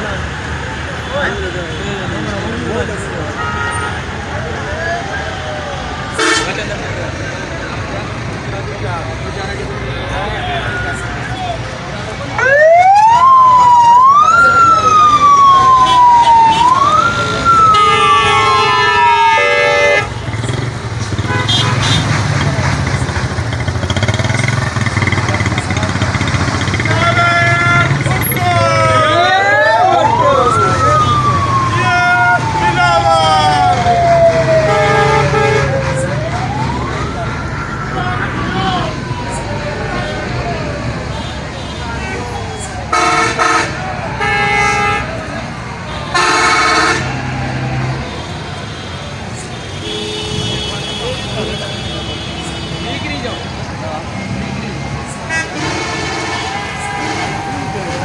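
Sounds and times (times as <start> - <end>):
vehicles passing with engines running: 0.0 - 58.0
wailing sirens: 10.6 - 20.2, 26.8 - 41.3, 42.2 - 49.3, 55.1 - 58.0.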